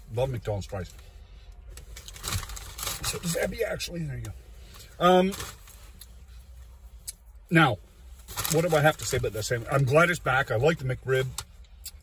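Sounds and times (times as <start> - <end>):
paper packaging rustling: 8.2 - 9.2.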